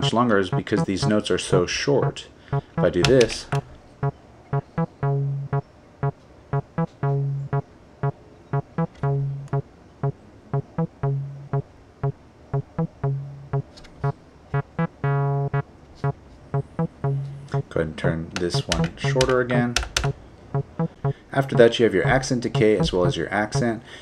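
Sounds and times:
synthesizer acid bassline: 0.0s - 1.1s, 2.6s - 3.2s, 4.6s - 5.6s, 6.6s - 7.6s, 8.6s - 11.6s, 12.6s - 13.6s, 14.6s - 15.6s, 16.6s - 17.6s, 18.6s - 19.3s, 20.6s - 21.7s, 22.6s - 23.7s.

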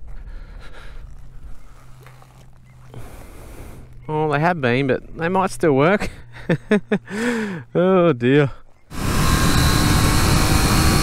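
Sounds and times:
person breathing close: 2.9s - 4.0s, 7.0s - 7.7s.

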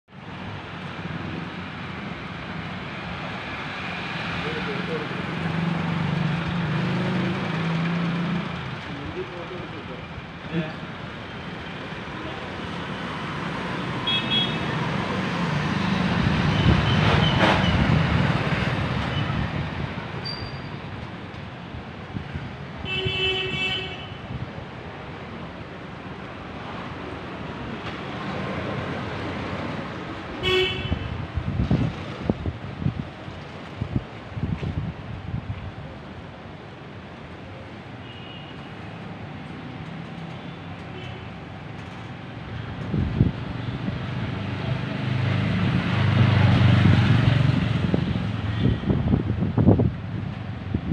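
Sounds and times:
busy street traffic: 0.1s - 50.9s
vehicle horns honking: 14.0s - 14.7s, 30.4s - 31.1s
vehicle passing close by: 43.3s - 49.2s.

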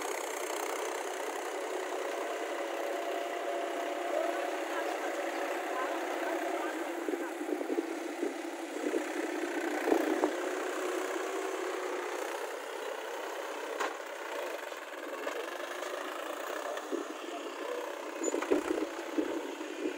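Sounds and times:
tractor diesel engine running: 0.0s - 19.9s.

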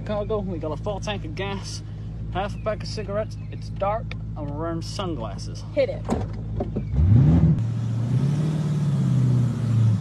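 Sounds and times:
car engine revving: 6.6s - 10.0s.

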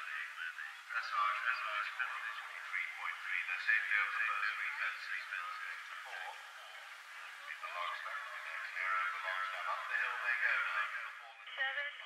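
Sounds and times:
tinny voice over radio speaker: 0.0s - 12.0s.

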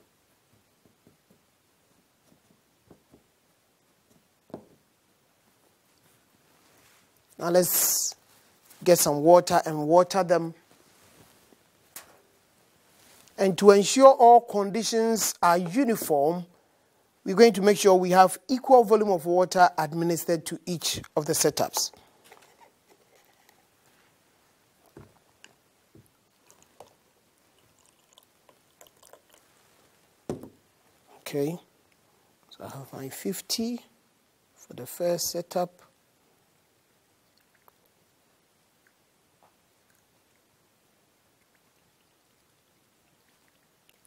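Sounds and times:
water pouring into glass: 26.3s - 29.5s.

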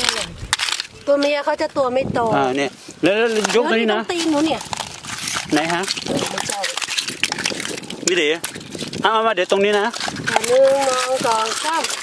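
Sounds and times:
hand rake scraping oyster shells: 0.0s - 12.0s
people talking: 9.1s - 12.0s.

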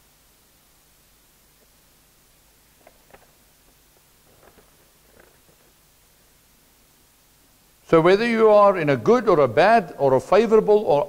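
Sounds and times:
paper rustling: 2.8s - 5.8s.

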